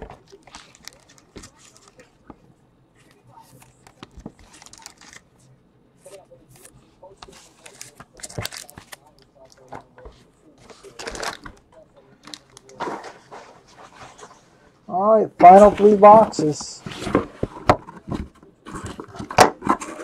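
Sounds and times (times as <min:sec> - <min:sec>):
trading cards rustling and tapping: 0:06.6 - 0:11.6.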